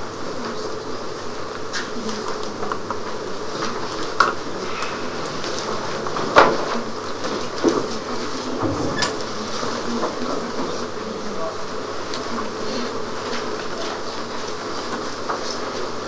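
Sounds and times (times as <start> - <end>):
room hum and hiss: 0.0 - 16.0.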